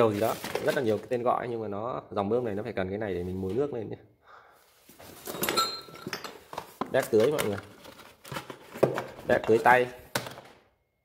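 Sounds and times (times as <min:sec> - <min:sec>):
man speaking: 0:06.9 - 0:07.7, 0:09.3 - 0:10.0.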